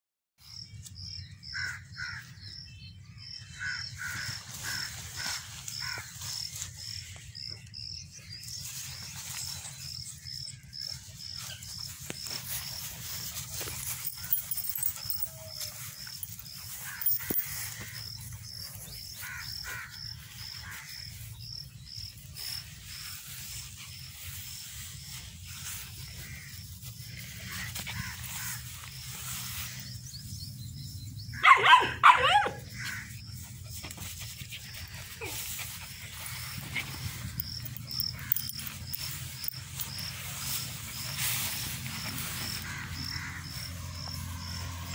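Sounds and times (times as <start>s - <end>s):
insect chirping: 4.4s - 44.9s
puppy rustling in grass: 8.4s - 10.0s, 11.0s - 21.3s, 22.2s - 29.8s, 33.4s - 44.8s
puppy yapping bark: 31.4s - 32.6s.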